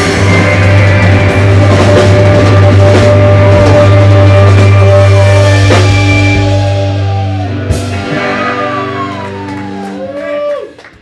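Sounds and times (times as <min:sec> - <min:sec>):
rock band final chord: 0:00.0 - 0:10.2
people clapping: 0:08.7 - 0:11.0.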